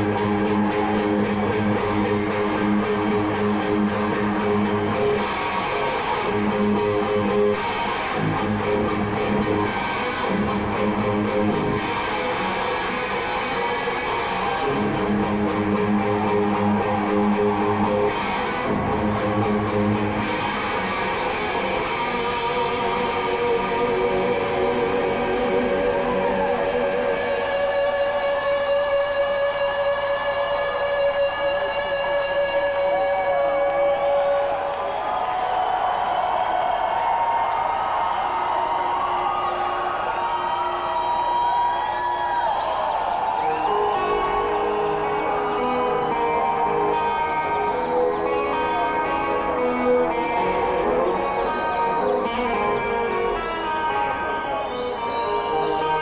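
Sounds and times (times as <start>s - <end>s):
electric guitar through amplifier: 0.0s - 35.0s, 43.4s - 56.0s.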